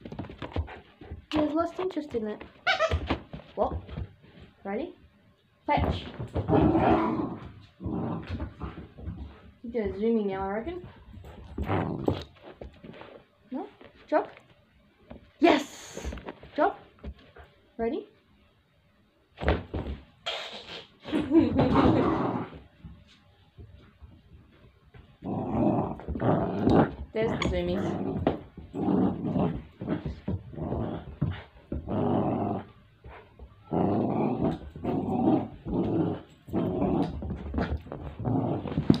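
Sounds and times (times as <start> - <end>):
dog growling playfully: 6.4 - 9.2, 11.6 - 12.3, 21.3 - 22.6, 25.2 - 32.8, 33.6 - 39.0
puppy scuffle: 10.5 - 17.6.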